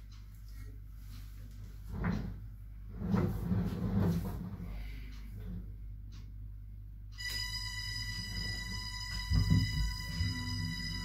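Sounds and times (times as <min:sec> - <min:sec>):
steady low room hum: 0:00.0 - 0:11.0
knock: 0:09.3 - 0:10.0.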